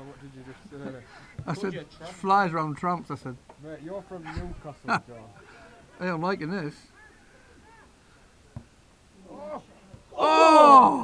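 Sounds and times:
spectator going ooh: 10.2s - 11.0s.

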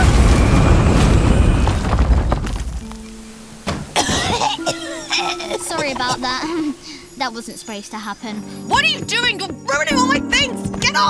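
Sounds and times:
soft background music: 2.8s - 11.0s
cartoon girl coughing: 4.0s - 6.7s.

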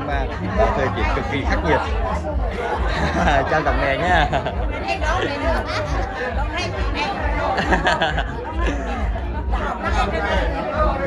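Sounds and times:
women chattering: 0.0s - 11.0s
women laughing: 2.6s - 6.4s, 7.4s - 9.2s.

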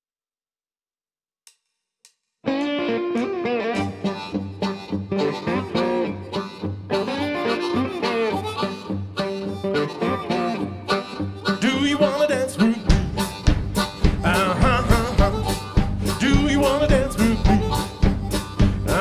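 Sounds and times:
blues band playing: 2.5s - 19.0s
blues harmonica lead: 2.5s - 19.0s.

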